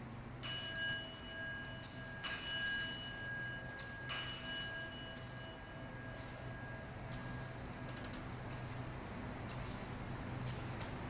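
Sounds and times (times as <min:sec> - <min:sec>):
altar bells jangling: 0:00.4 - 0:07.9.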